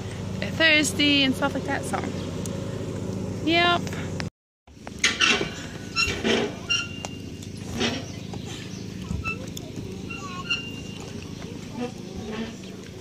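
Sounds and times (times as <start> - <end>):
steady low hum: 0.0 - 13.0
distant children's voices: 6.0 - 13.0.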